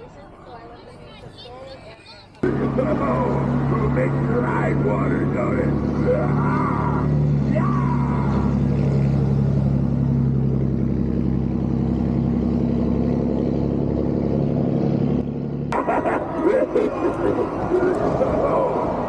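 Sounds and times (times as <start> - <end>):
pickup truck engine running: 2.4 - 19.0.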